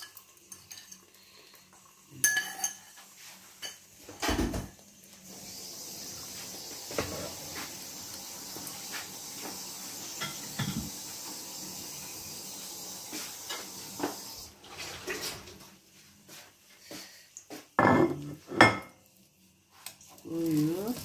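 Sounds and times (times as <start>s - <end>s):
eggs sizzling in a frying pan: 0.0s - 21.0s.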